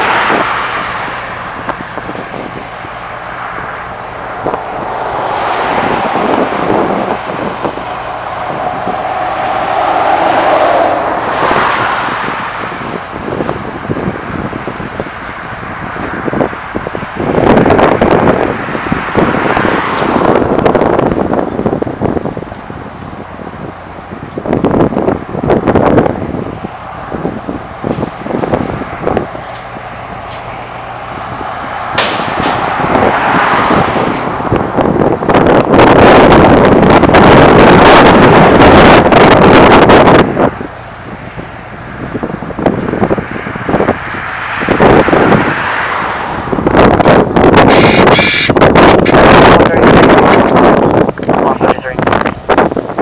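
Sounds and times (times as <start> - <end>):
vehicle noise: 0.0 - 53.0
wind buffeting microphone: 0.0 - 53.0.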